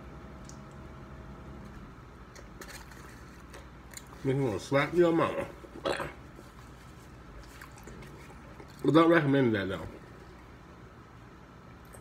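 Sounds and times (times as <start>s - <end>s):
low room hum: 0.0s - 12.0s
soft chewing: 1.7s - 4.4s, 5.4s - 8.9s.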